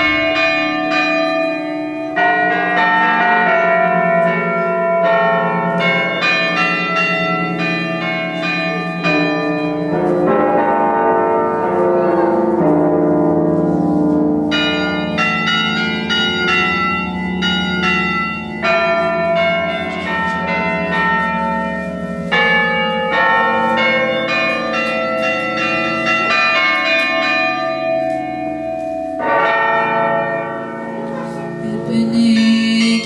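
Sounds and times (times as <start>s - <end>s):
low bell tones: 0.0s - 33.0s.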